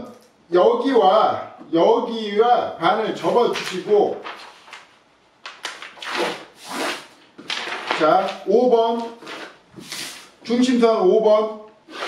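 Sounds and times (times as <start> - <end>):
paper rustling: 3.1 - 10.3
hands swishing along paper: 3.3 - 8.4, 9.0 - 10.4.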